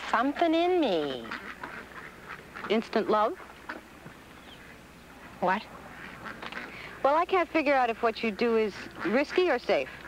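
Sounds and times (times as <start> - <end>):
faint outdoor background noise: 0.0 - 10.0
woman asking a question: 2.7 - 3.4, 5.4 - 5.7, 7.0 - 9.9.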